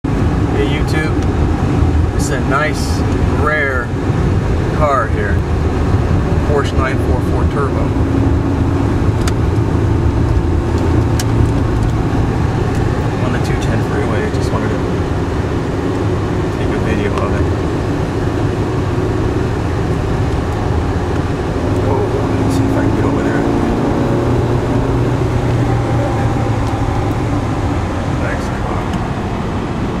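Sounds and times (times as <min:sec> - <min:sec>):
car road and engine drone: 0:00.0 - 0:30.0.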